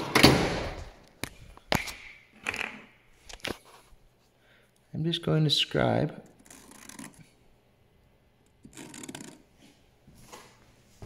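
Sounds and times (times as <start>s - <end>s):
marker scratching on plastic: 6.4s - 7.3s, 8.6s - 9.5s.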